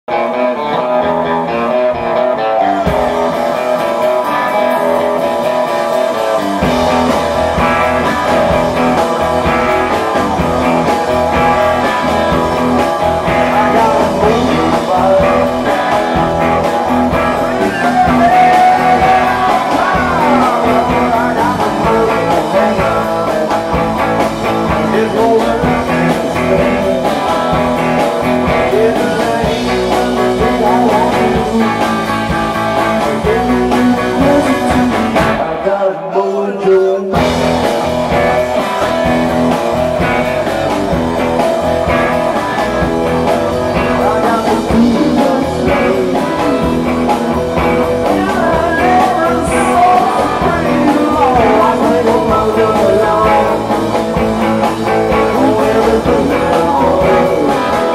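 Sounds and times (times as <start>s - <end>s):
electric bass: 0.0s - 35.9s, 37.1s - 57.9s
electric guitar: 0.0s - 57.9s
live rock band playing: 0.1s - 57.9s.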